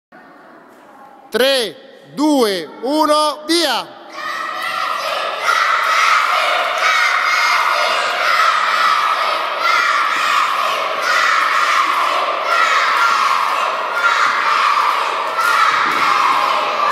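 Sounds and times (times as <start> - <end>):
children shouting and cheering: 4.0 - 16.9.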